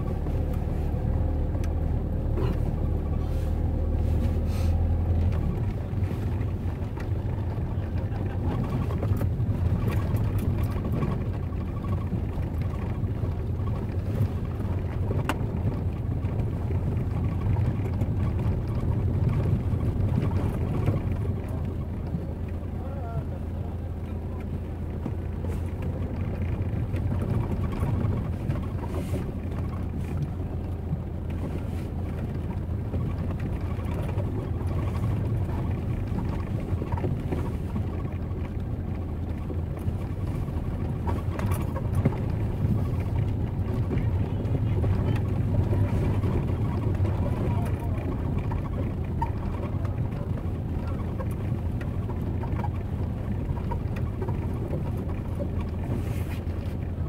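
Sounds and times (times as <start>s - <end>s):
traffic rumble: 0.0s - 57.0s
people talking: 20.9s - 24.7s, 43.6s - 51.4s.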